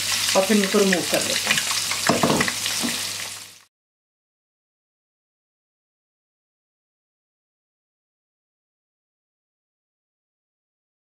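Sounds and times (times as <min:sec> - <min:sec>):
eggs sizzling in hot oil: 0:00.0 - 0:03.7.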